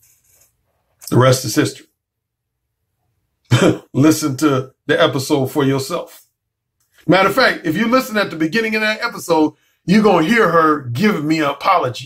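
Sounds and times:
man speaking: 1.0 - 1.9, 3.5 - 6.2, 7.0 - 12.0.

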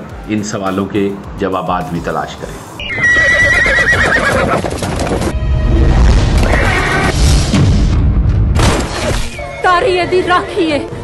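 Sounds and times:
horse whinnying: 2.8 - 4.8, 6.4 - 7.1
dramatic music: 4.7 - 11.0.

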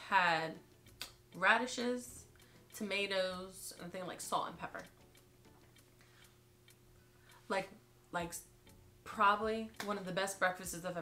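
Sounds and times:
faint steady hum: 0.0 - 11.0
faint irregular ticks: 0.6 - 8.9.

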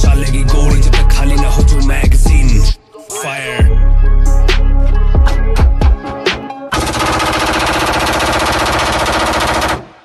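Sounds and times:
machine-gun fire: 6.7 - 10.0.

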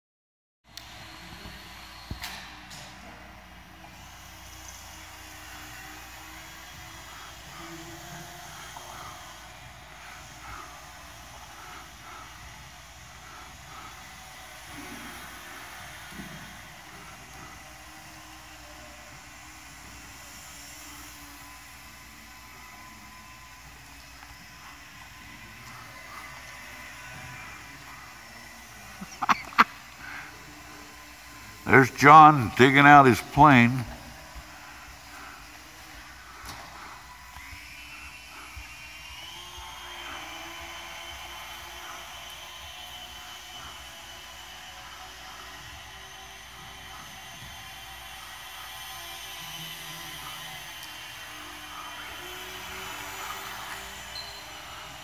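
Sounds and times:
small electric motor whine: 0.7 - 55.0.

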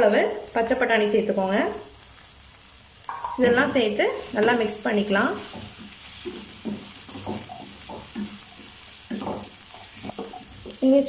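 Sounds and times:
vegetables sizzling in oil: 0.0 - 11.0
spatula scraping pan: 3.3 - 10.9.

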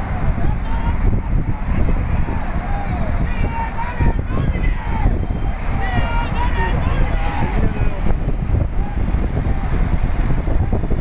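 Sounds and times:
highway road noise: 0.0 - 11.0
voices calling out: 0.0 - 11.0
wind rushing on microphone: 0.0 - 11.0.

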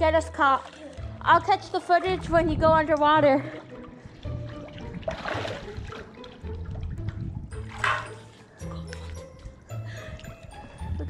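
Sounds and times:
background music: 0.0 - 11.0
pool water sloshing and splashing: 0.4 - 8.7.

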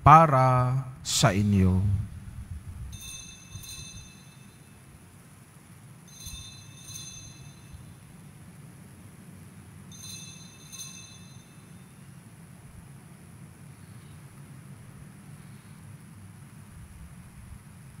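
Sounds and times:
steady low hum: 0.0 - 18.0
small bell ringing: 2.9 - 5.0, 6.0 - 8.2, 9.9 - 12.2.

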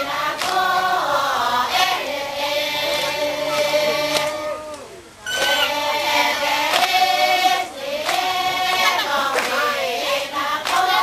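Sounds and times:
women singing a chant together: 0.0 - 11.0
hand claps: 0.2 - 1.1, 3.5 - 5.7, 6.6 - 11.0.

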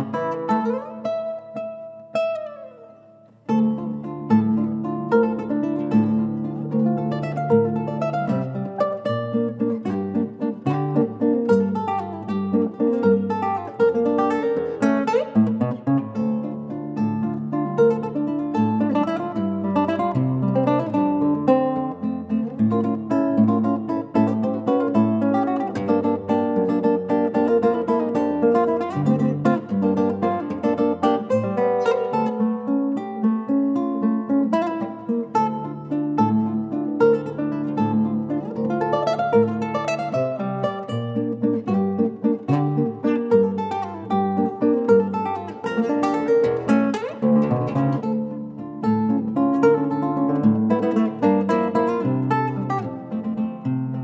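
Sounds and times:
classical guitar fingerstyle melody: 0.0 - 54.0.

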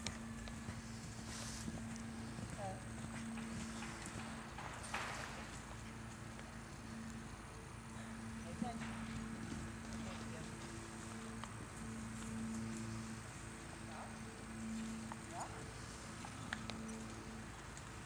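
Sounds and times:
horse hoofbeats on dirt: 0.0 - 18.0
steady low hum: 0.0 - 18.0.

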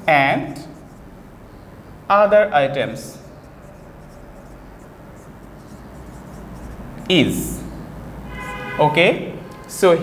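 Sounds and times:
marker pen on whiteboard: 0.0 - 10.0.

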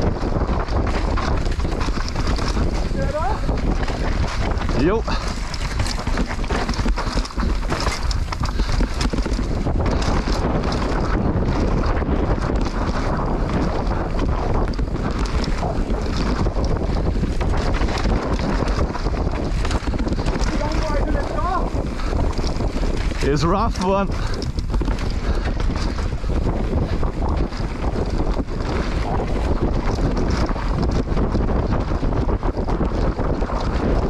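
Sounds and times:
mountain bike rattling on rough trail: 0.0 - 34.0
wind buffeting microphone: 0.0 - 34.0
bike knocking over bumps: 0.1 - 34.0.

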